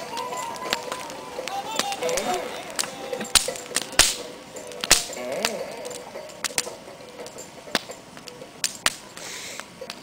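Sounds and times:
wood fire crackling: 0.0s - 10.0s
sharp pops: 0.6s - 5.6s
faint hiss: 9.0s - 9.9s.

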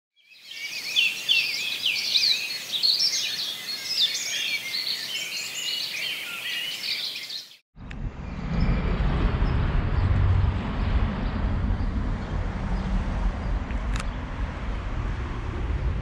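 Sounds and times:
songbirds singing: 0.2s - 7.6s.

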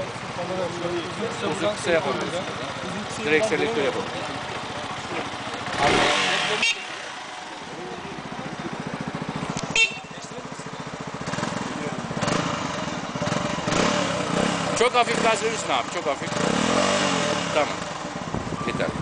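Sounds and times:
motorcycle engine idling: 0.0s - 19.0s.

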